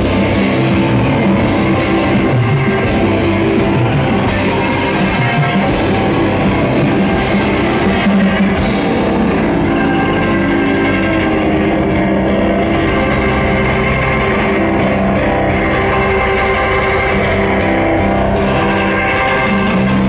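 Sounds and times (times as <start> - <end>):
live rock band with distorted guitars: 0.0 - 20.0.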